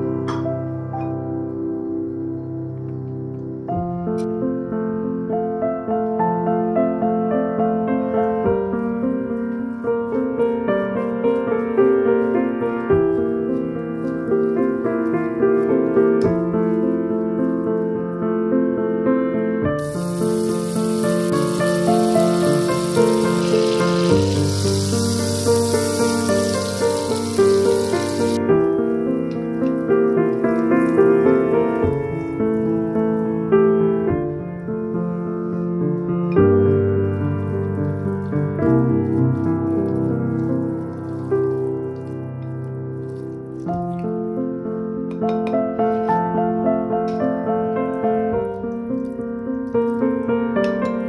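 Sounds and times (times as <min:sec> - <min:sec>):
gentle piano music: 0:00.0 - 0:51.0
butter sizzling in a frying pan: 0:19.8 - 0:28.4
spatula squishing grated potato: 0:19.8 - 0:28.4, 0:37.3 - 0:43.9.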